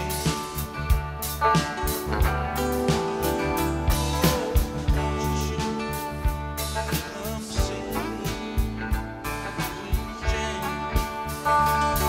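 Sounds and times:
rock band playing live: 0:00.0 - 0:12.0
steady drum beat: 0:00.0 - 0:12.0.

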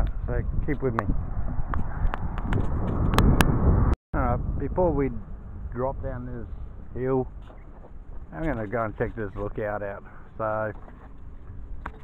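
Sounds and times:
wind buffeting camera microphone: 0:00.0 - 0:12.0.

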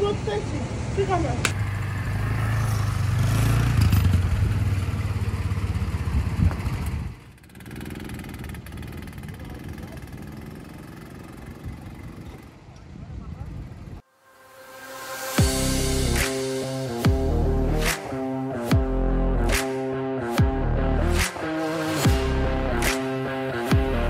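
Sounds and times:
go-kart engines running: 0:00.0 - 0:14.0.

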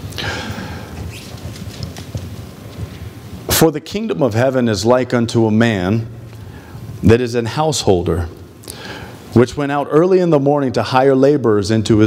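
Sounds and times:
steady low hum: 0:00.0 - 0:11.3
book pages rustling and tapping: 0:01.1 - 0:03.0.

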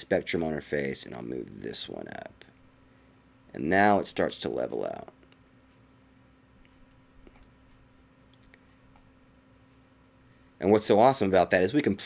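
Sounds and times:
faint steady hum: 0:00.0 - 0:12.0
computer mouse clicks: 0:06.6 - 0:09.1.

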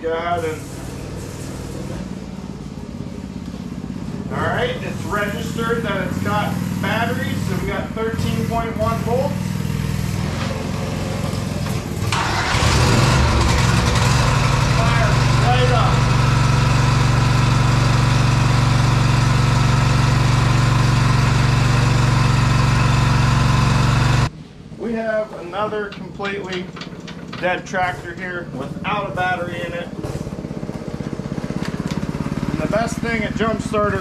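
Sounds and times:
lawn tractor engine running: 0:01.1 - 0:24.3, 0:25.8 - 0:34.0.

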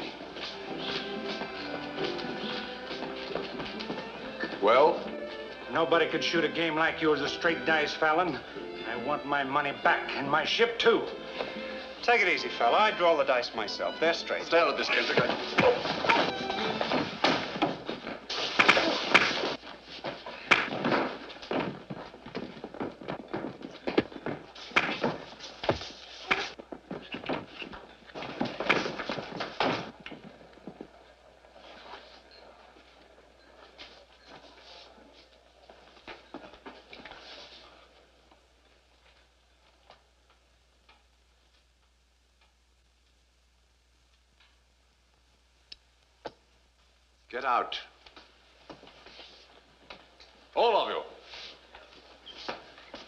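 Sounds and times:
film soundtrack music: 0:00.0 - 0:17.7.

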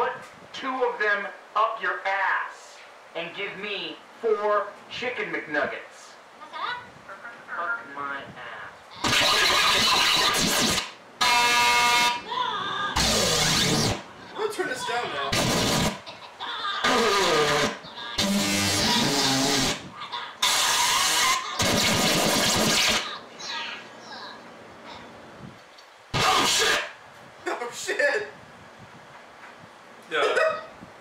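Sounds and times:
cartoon voices: 0:08.9 - 0:10.8, 0:12.2 - 0:25.1, 0:26.1 - 0:27.0
harsh noisy bursts: 0:09.0 - 0:12.2, 0:13.0 - 0:14.1, 0:15.3 - 0:16.1, 0:16.8 - 0:23.2, 0:26.1 - 0:27.0
high-pitched squeals: 0:09.0 - 0:14.1, 0:16.8 - 0:23.2.

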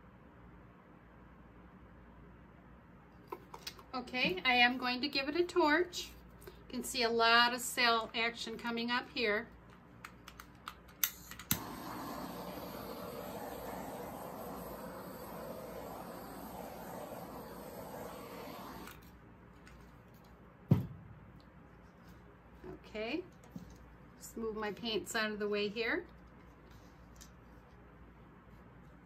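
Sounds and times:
torch igniter click: 0:11.0 - 0:19.0
torch flame hissing: 0:11.2 - 0:19.0.

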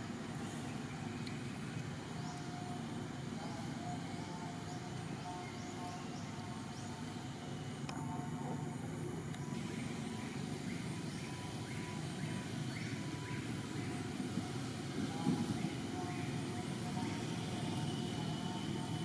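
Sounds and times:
low outdoor rumble: 0:00.0 - 0:19.0.

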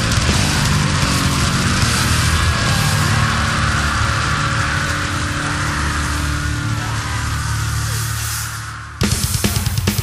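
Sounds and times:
distorted guitars and bass riff: 0:00.0 - 0:10.0.

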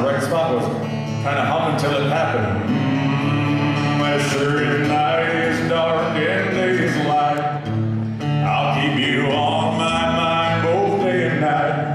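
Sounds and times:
acoustic guitar: 0:00.0 - 0:11.9
man humming: 0:02.2 - 0:07.6.

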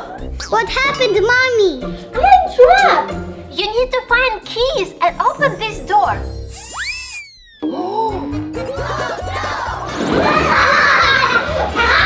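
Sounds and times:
background music: 0:00.0 - 0:06.6, 0:07.6 - 0:12.0
cartoon sparkle shimmer: 0:05.2 - 0:08.0.

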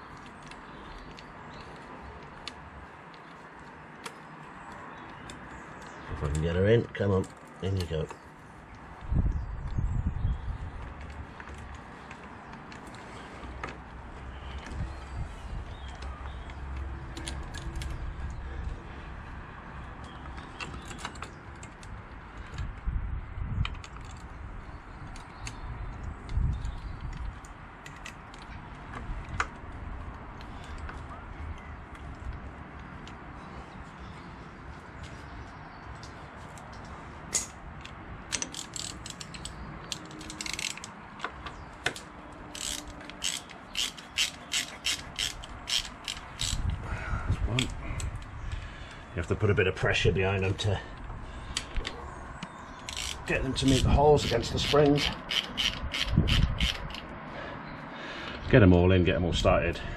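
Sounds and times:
socket ratchet clicking: 0:37.3 - 0:46.8, 0:52.8 - 0:57.1.

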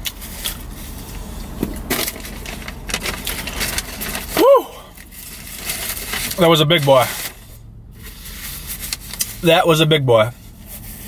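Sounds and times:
paper bag rustling: 0:01.8 - 0:09.4.

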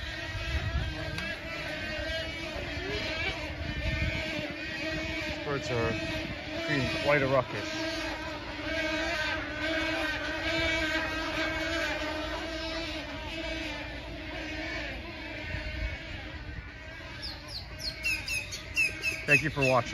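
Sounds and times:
flock of birds calling: 0:00.0 - 0:19.9.

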